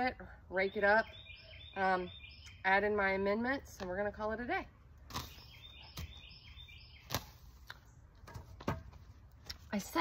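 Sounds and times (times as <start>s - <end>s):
faint bird chirps: 0.6s - 2.8s, 5.1s - 7.5s.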